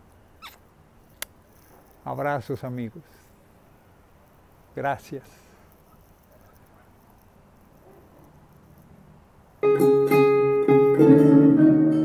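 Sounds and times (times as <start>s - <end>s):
short squeak: 0.4s - 0.6s
sharp click: 0.4s - 1.7s.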